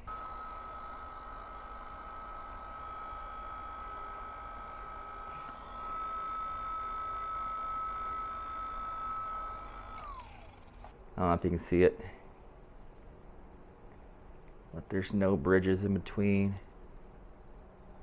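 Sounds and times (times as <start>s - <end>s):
heat gun whining: 0.0s - 11.0s.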